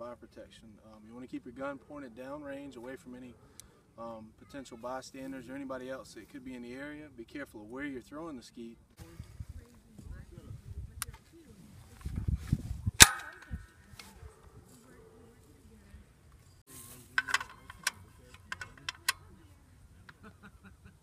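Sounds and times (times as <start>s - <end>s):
metal clacks of clay pigeon thrower: 13.0s - 14.2s, 17.2s - 19.2s
light metal clicks: 17.2s - 19.3s.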